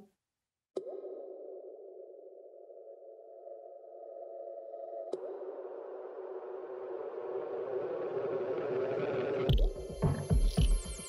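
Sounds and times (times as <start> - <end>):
electronic synthesizer drone: 2.7 - 11.0.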